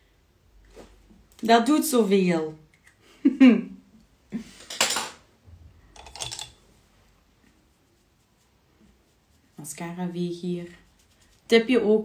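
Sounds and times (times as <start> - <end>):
light clicks and rattles: 5.9 - 6.6.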